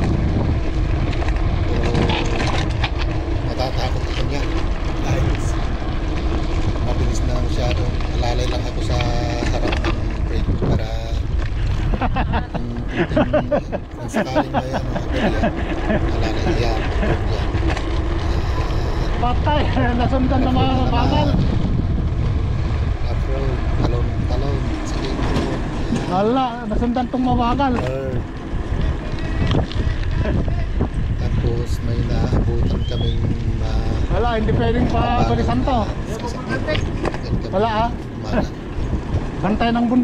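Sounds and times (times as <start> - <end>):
bike rolling on concrete: 0.0 - 40.0
wind rush on microphone: 0.0 - 40.0
person speaking: 1.7 - 2.6, 3.5 - 5.6, 6.9 - 11.3, 12.4 - 17.6, 18.2 - 21.5, 23.1 - 28.2, 30.4 - 38.5.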